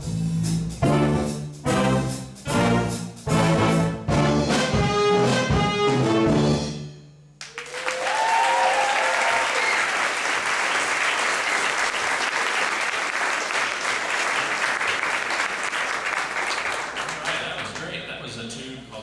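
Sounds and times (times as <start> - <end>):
audience applauding and cheering: 7.4 - 18.0.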